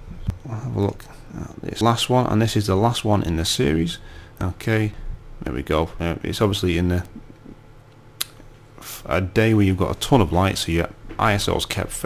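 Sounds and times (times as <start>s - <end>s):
faint low hum: 0.0s - 12.0s
person breathing: 4.0s - 4.4s.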